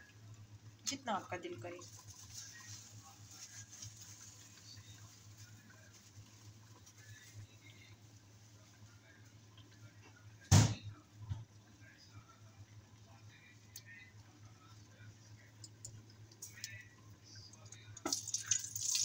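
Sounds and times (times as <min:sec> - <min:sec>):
low steady hum: 0:00.0 - 0:19.0
chillies sizzling in hot fat: 0:00.9 - 0:09.1, 0:17.6 - 0:19.0.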